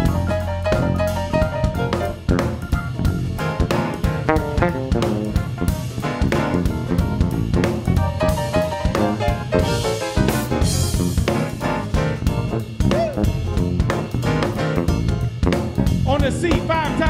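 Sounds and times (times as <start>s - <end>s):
drum kit beat: 0.0s - 17.0s
jazz piano and keyboards: 0.0s - 17.0s.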